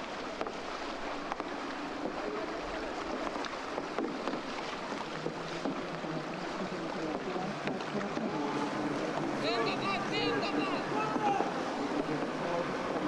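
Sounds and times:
steady outdoor hiss: 0.0 - 13.0.

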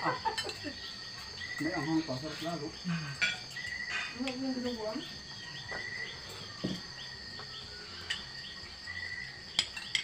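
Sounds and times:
crickets chirping: 0.0 - 10.0
cutlery clinking dishes: 0.2 - 0.7, 3.1 - 4.4, 9.5 - 10.0.

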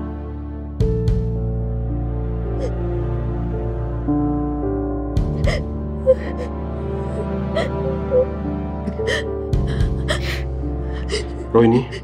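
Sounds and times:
dramatic background music: 0.0 - 12.0
woman crying and sobbing: 5.4 - 12.0.

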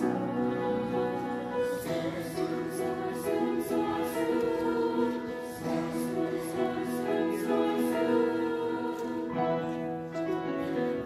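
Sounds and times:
women's choir singing chords: 0.0 - 11.0.

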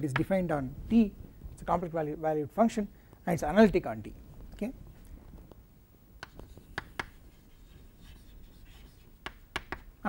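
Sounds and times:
chalk scratching strokes: 6.2 - 9.7
chalk tapping on chalkboard: 6.2 - 9.9.

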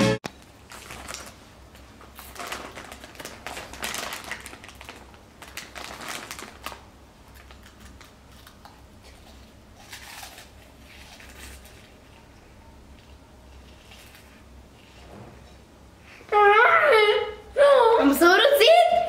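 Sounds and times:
snack bag rustling: 0.4 - 12.4, 13.0 - 15.0
crunchy chewing: 7.3 - 14.5.

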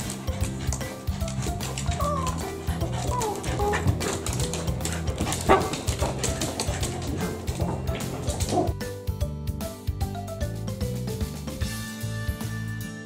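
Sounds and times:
dog whining: 1.4 - 4.4
dog barking: 5.2 - 8.7.

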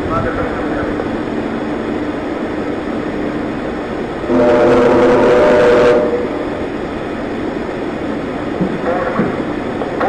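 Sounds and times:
steady rushing noise: 0.0 - 10.0
loud warning horn: 4.3 - 6.4.

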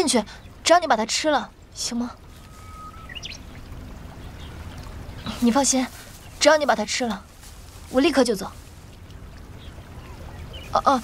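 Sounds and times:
soft hiss: 1.6 - 11.0
faint high rising chirps: 2.2 - 3.7.

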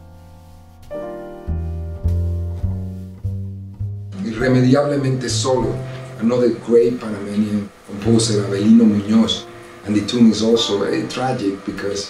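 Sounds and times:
slow quiet piano music: 0.0 - 12.0.

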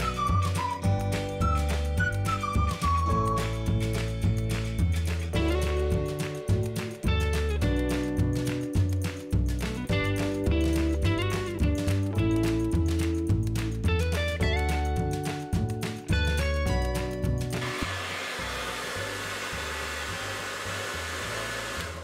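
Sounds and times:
background music with beat: 0.0 - 17.8
hair dryer running: 17.6 - 22.0.

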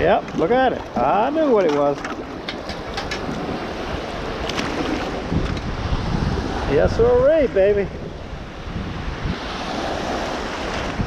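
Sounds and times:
wind buffeting microphone: 0.0 - 11.0
shallow surf washing in: 2.8 - 11.0.

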